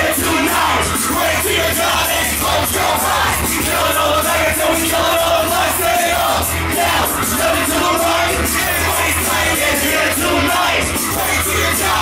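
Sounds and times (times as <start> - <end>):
crowd shouting and yelling: 0.0 - 12.0
hip-hop beat with heavy bass: 0.0 - 12.0
rapping: 0.0 - 12.0.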